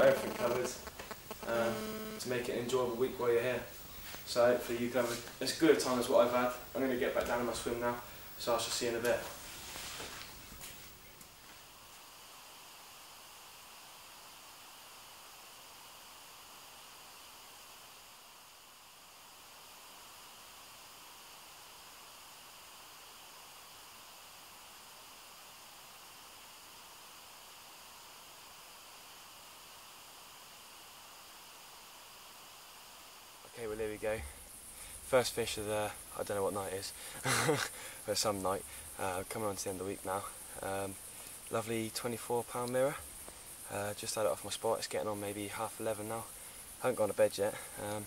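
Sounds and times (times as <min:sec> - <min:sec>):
faint outdoor hiss: 0:00.0 - 0:48.0.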